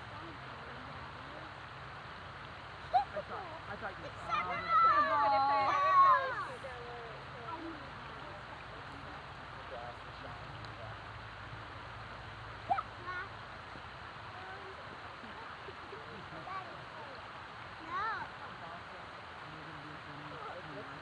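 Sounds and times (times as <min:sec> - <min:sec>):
outdoor background hiss: 0:00.0 - 0:21.0
distant children's voices: 0:02.6 - 0:10.0, 0:12.5 - 0:18.6.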